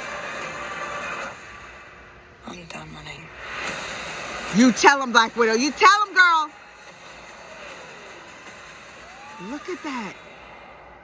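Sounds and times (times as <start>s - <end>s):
movie trailer score and effects: 0.0s - 11.0s.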